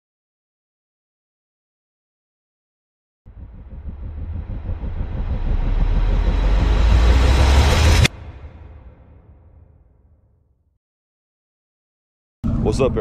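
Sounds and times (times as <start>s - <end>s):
rumbling whoosh: 3.3s - 10.2s.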